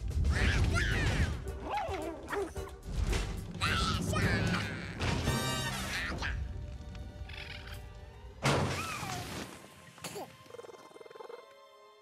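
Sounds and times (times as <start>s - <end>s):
film score music: 0.0s - 12.0s
cartoon raccoon squealing yelps: 0.3s - 2.6s
low rumble of flames: 5.0s - 8.4s.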